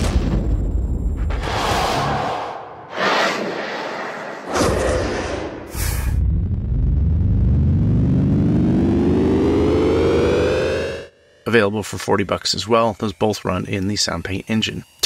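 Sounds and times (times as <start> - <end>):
synthesized riser: 1.4 - 14.8.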